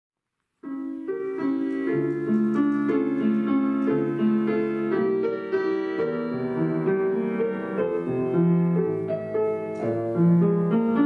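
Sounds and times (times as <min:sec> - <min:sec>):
grand piano playing: 0:00.4 - 0:11.0.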